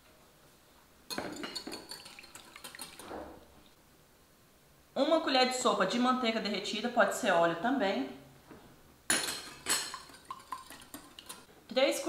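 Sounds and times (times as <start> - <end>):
wire whisk clattering against glass bowl: 1.1 - 3.0, 9.1 - 11.5.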